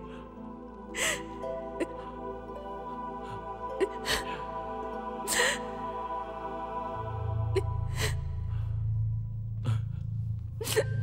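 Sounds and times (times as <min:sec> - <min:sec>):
low drone: 0:00.0 - 0:11.0
slow background music: 0:00.0 - 0:11.0
woman sobbing with gasps: 0:00.9 - 0:02.2, 0:03.2 - 0:05.8, 0:10.6 - 0:11.0.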